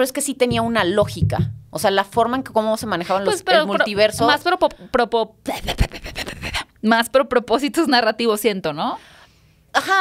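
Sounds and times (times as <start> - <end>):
dull low bump: 0.4 - 4.4
person speaking: 0.5 - 4.9.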